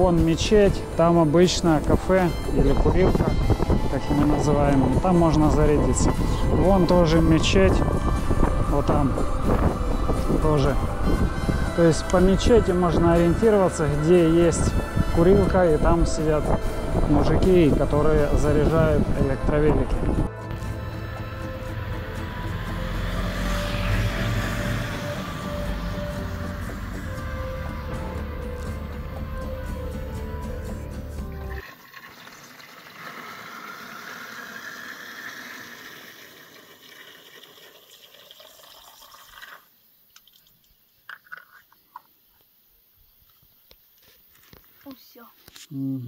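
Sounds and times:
background music: 0:00.0 - 0:31.8
drinking fountain water running: 0:31.6 - 0:40.5.

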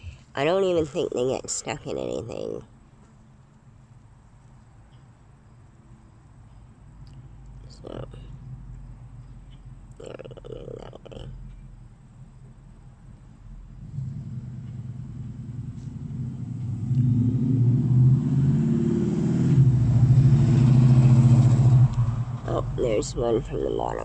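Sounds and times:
vehicle engine: 0:00.0 - 0:24.0.

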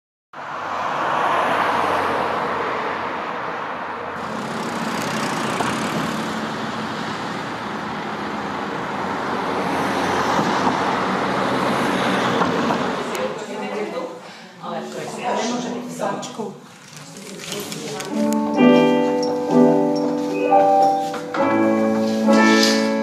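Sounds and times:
passing cars: 0:00.4 - 0:14.3.

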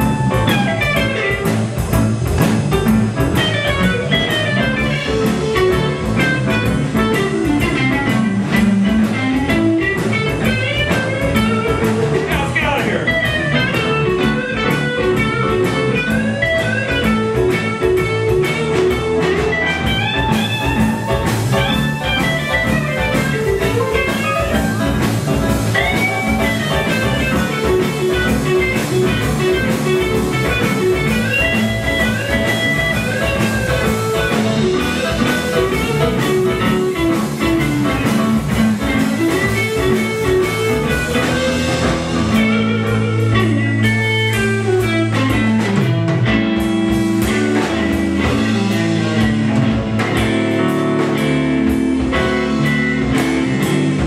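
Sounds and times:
blues-rock band playing: 0:00.0 - 0:54.0
electric guitar lead: 0:00.0 - 0:54.0.

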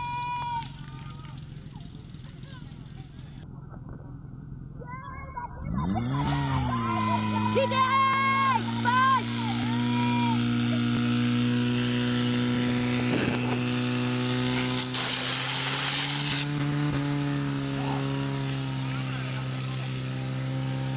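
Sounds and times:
person shouting: 0:00.0 - 0:00.7, 0:06.0 - 0:10.4
pump engine running at high revs: 0:05.8 - 0:20.9.

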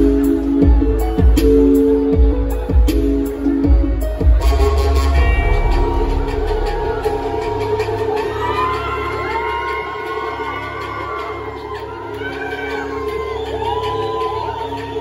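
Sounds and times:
synthesizer and keyboard chords: 0:00.0 - 0:15.0
crowd whooping and cheering: 0:04.3 - 0:15.0.

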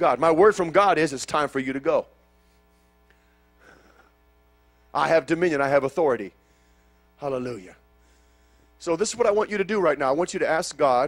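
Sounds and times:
electrical mains hum: 0:00.0 - 0:11.0
man's voice: 0:05.0 - 0:06.3, 0:08.8 - 0:11.0.

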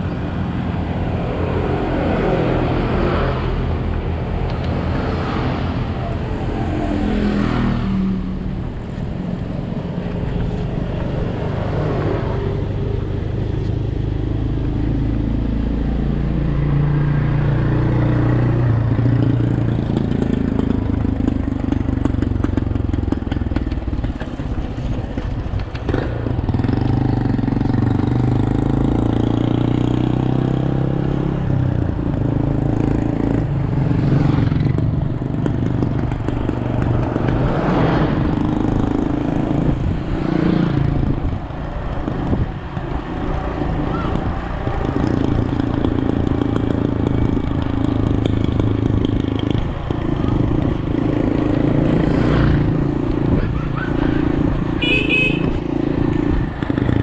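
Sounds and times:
motorcycle engines passing: 0:00.0 - 0:57.0
wind rumble: 0:30.8 - 0:53.6.

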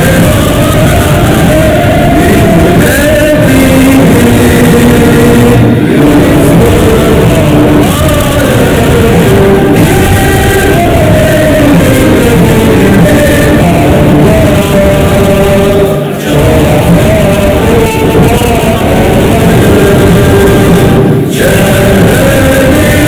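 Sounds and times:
anthem singing with accompaniment: 0:00.0 - 0:23.0.

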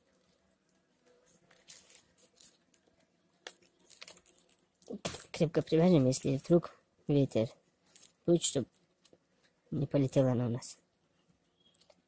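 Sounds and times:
paper rustling and crinkling: 0:00.0 - 0:05.5.

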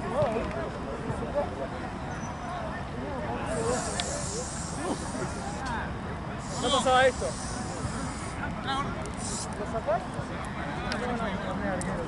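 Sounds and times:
distant voices of players: 0:00.0 - 0:12.0
steady high hiss: 0:03.4 - 0:09.7
faint click: 0:03.9 - 0:04.1.

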